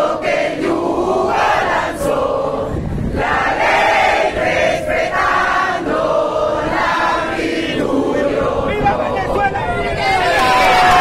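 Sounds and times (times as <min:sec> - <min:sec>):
crowd chanting in unison: 0:00.0 - 0:11.0.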